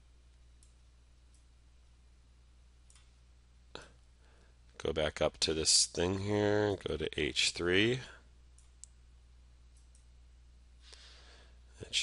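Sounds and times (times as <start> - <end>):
low steady hum: 0.0 - 12.0
computer mouse clicks: 0.6 - 1.5, 2.8 - 3.1, 9.7 - 10.1.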